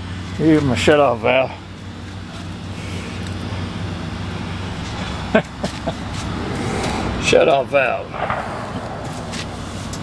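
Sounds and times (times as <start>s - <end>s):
small engine running: 0.0s - 7.4s.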